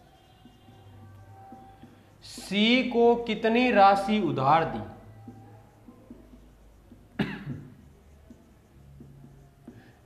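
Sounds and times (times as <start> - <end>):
marker scratching on whiteboard: 0.0 - 7.2, 7.8 - 10.0
man coughing: 7.2 - 7.7.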